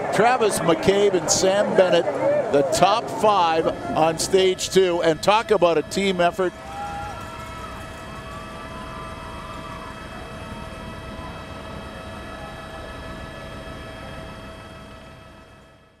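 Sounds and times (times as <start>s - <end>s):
steady mechanical drone: 0.0s - 16.0s.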